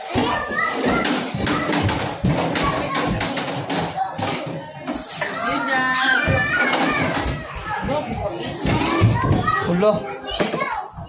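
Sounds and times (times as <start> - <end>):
children playing and chattering: 0.0 - 11.0
child's high voice: 8.8 - 11.0.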